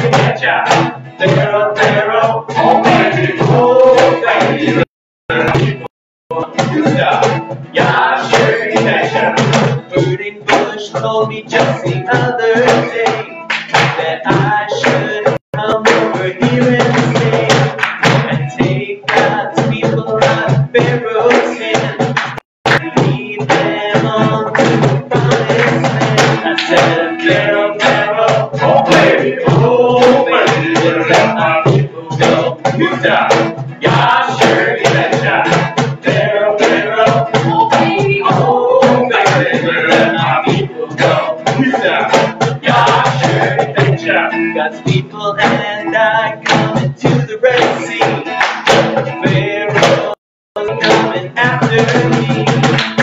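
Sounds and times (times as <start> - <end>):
cajon drum beat: 0.0 - 53.0
strummed acoustic guitar: 0.0 - 53.0
voices singing: 0.0 - 53.0.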